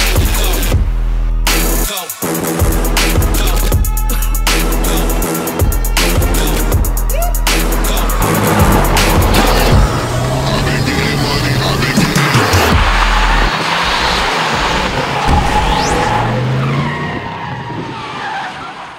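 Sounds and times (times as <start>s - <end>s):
music with steady bass: 0.0s - 13.5s
car engine revving hard: 7.5s - 18.0s.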